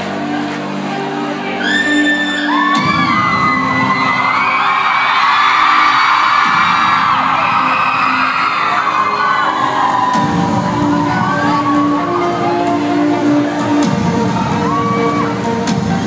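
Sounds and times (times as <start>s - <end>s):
crowd screaming and cheering: 0.0s - 16.0s.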